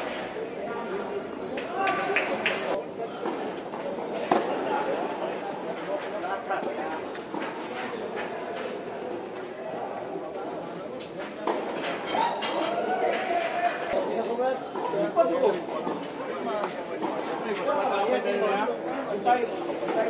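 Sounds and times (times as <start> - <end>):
people talking in background: 0.0 - 20.0.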